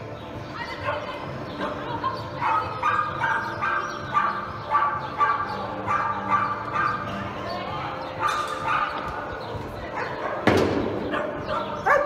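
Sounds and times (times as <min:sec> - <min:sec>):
dog barking: 0:02.4 - 0:07.2, 0:08.2 - 0:09.1, 0:09.9 - 0:12.0.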